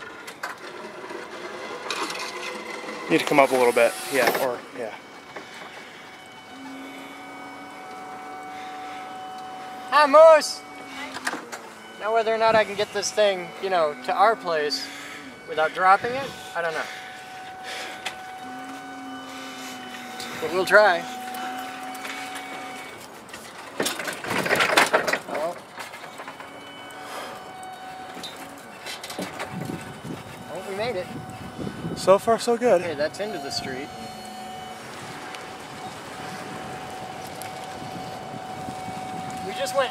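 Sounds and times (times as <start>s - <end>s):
electric motor hum and whine: 0.0s - 39.9s
low steady tone: 2.0s - 23.1s, 25.8s - 39.9s
rattling and clattering: 23.1s - 26.7s.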